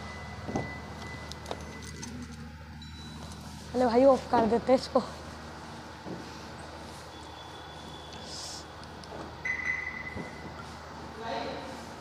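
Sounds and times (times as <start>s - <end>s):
high-pitched electronic beep: 9.4s - 10.4s.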